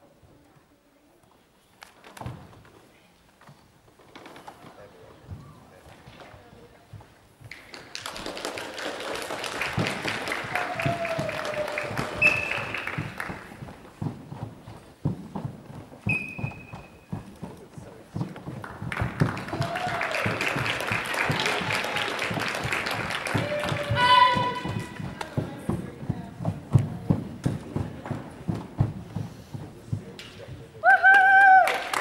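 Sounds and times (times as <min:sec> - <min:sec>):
bare feet stamping on wooden floor: 0:09.5 - 0:30.8.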